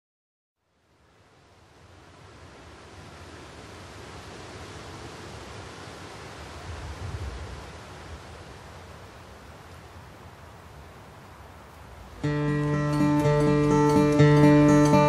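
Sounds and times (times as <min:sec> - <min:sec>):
wind through tall grass: 0:00.6 - 0:15.0
wind buffeting microphone: 0:06.3 - 0:08.6.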